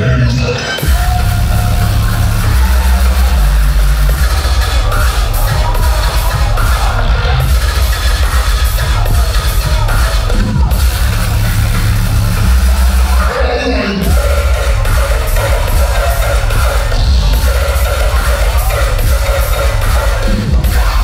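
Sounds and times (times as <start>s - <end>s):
bass-heavy electronic dance music: 0.0s - 21.0s.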